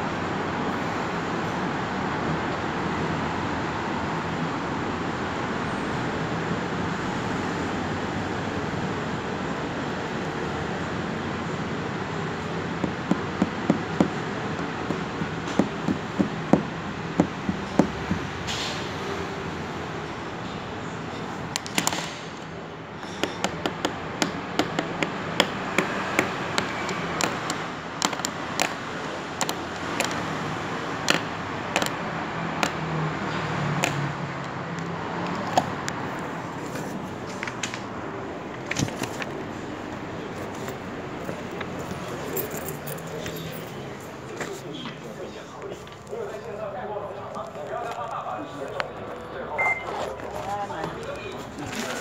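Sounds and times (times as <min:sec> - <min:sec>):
sharp irregular clicks and knocks: 0:21.5 - 0:30.3, 0:31.0 - 0:32.8
indistinct background voices: 0:39.5 - 0:52.0
high electronic beep: 0:49.6 - 0:50.0.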